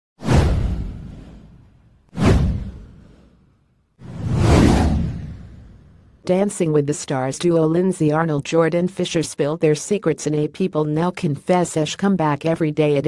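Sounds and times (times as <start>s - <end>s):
deep whoosh sound effects: 0.2s - 6.2s.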